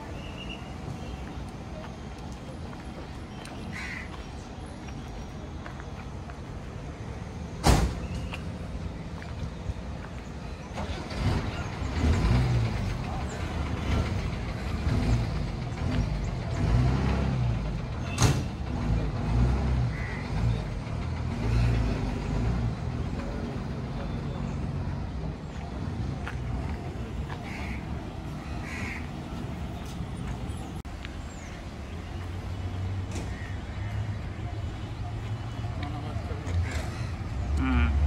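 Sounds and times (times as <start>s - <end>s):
diesel bus engine rumbling: 0.0s - 38.0s.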